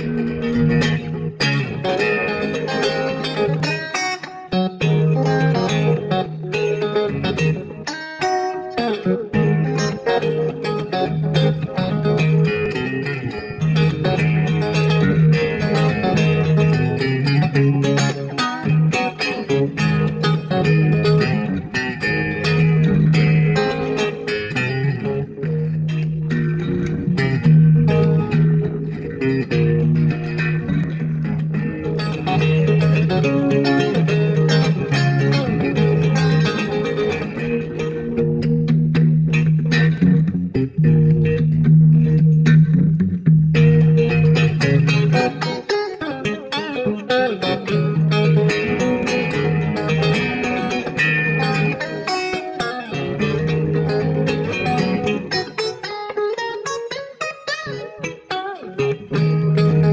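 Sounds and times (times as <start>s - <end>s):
electric guitar lead lines: 0.0s - 59.9s.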